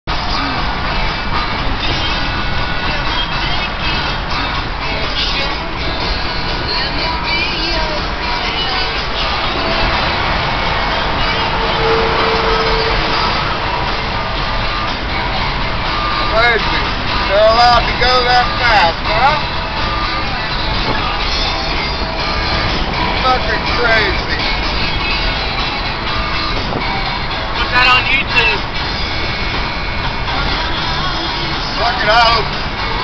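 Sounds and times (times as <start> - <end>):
music playing: 0.1 - 33.0
road and wind noise in car: 0.1 - 33.0.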